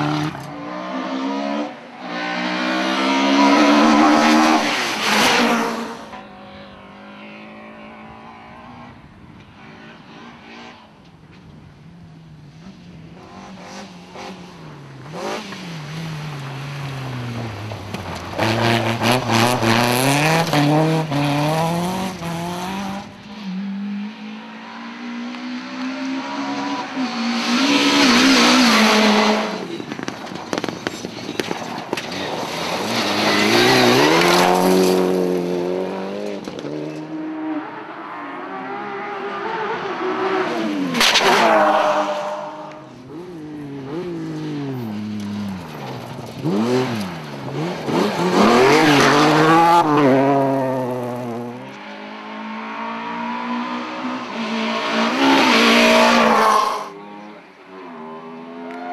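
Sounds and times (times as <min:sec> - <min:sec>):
rally cars racing past: 0:00.0 - 0:11.8, 0:12.5 - 0:58.9.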